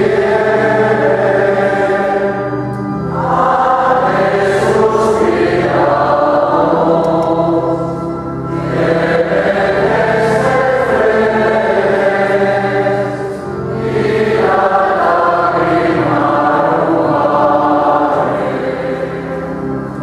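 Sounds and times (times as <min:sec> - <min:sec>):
men's choir singing a hymn: 0:00.0 - 0:20.0
steady low notes: 0:00.0 - 0:20.0.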